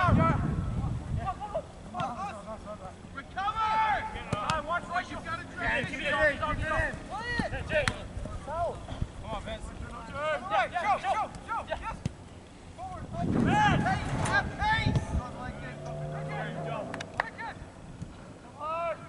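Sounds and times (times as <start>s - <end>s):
distant shouting voices: 1.2s - 9.0s, 9.7s - 19.0s.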